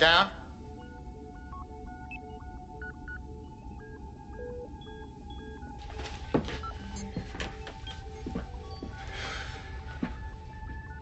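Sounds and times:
steady two-note electronic hum: 0:00.0 - 0:05.9.

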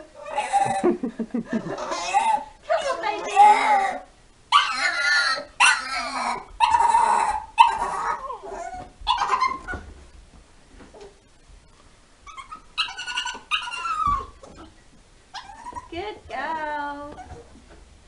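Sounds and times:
dog whining and yelping: 0:01.6 - 0:09.9, 0:12.2 - 0:15.9.

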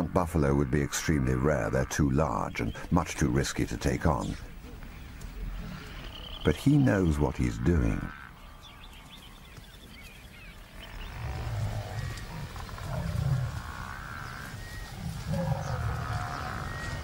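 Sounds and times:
buffalo grunting calls: 0:10.8 - 0:17.0.

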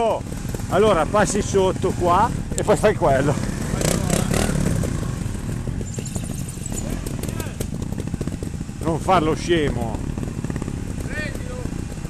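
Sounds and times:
motorcycle engines idling: 0:00.0 - 0:12.0.

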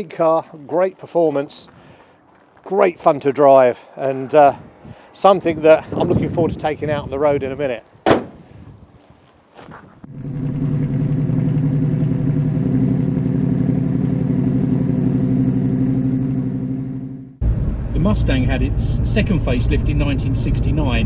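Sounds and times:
car engine running at low revs: 0:10.0 - 0:21.0.

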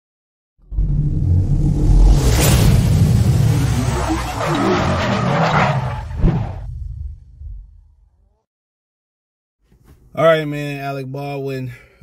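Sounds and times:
car tyre squealing: 0:03.5 - 0:06.7.

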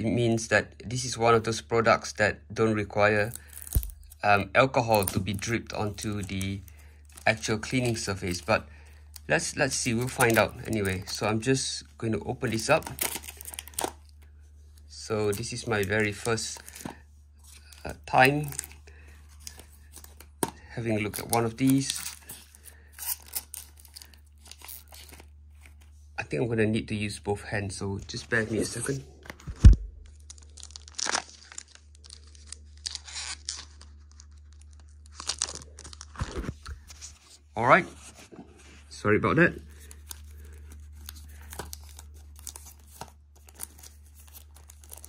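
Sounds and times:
foil wrapper tearing and crinkling: 0:03.1 - 0:04.4, 0:05.0 - 0:11.3, 0:12.4 - 0:14.2, 0:21.0 - 0:25.8, 0:30.0 - 0:36.9, 0:39.8 - 0:45.0.

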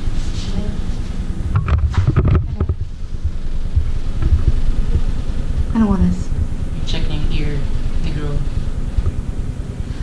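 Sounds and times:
microphone handling rumble: 0:00.0 - 0:10.0
rustles and knocks: 0:01.5 - 0:05.7.

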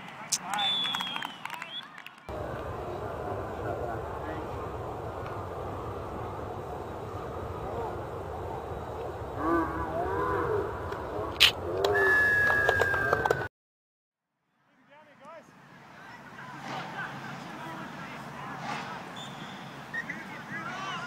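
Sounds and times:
distant shouts of players: 0:00.4 - 0:11.3
steady low rumble: 0:02.3 - 0:11.9.

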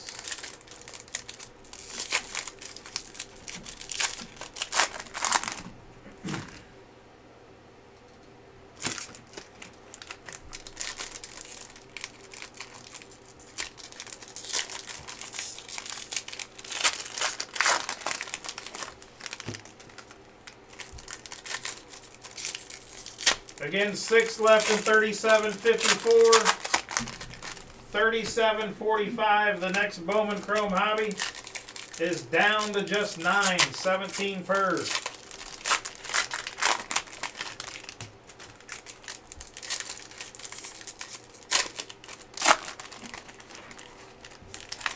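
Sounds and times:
foil wrapper crinkling and tearing: 0:00.0 - 0:05.7, 0:08.8 - 0:27.8, 0:29.6 - 0:44.9.

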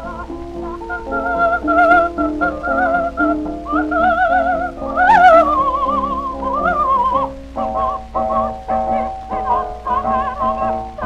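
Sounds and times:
soprano singing high notes: 0:00.0 - 0:11.0.

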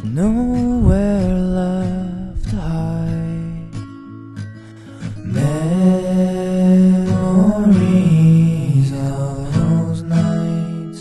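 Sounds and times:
acoustic guitar: 0:00.0 - 0:11.0
man singing a held note: 0:05.3 - 0:11.0.

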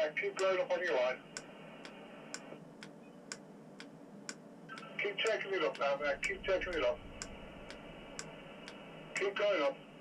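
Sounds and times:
faint radio hiss: 0:00.0 - 0:10.0
sharp steady ticking: 0:01.3 - 0:09.4.

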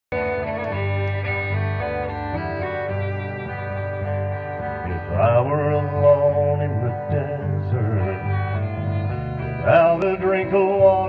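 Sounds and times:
acoustic guitar strumming: 0:00.1 - 0:11.0
fiddle melody: 0:00.1 - 0:11.0.

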